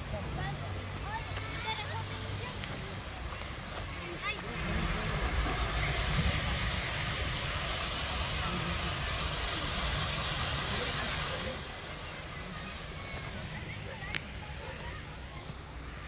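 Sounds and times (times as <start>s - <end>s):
water tumbling down waterfall: 0.8s - 15.0s.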